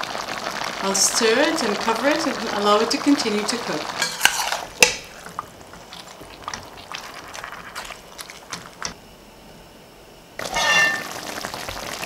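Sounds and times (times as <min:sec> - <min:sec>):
food simmering in a pot: 0:00.0 - 0:09.0, 0:10.4 - 0:12.0.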